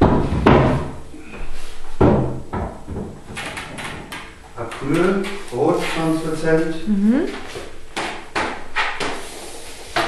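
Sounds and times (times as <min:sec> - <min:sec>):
frame panel knocking and clattering: 0:00.0 - 0:01.0, 0:02.0 - 0:05.4
heavy thuds of frame panel: 0:00.0 - 0:01.0, 0:02.0 - 0:03.2.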